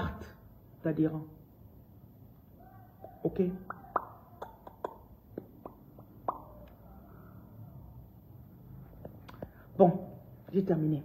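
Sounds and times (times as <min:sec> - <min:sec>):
low room noise: 0:00.0 - 0:11.0
mouth pop or tongue click: 0:03.7 - 0:06.7.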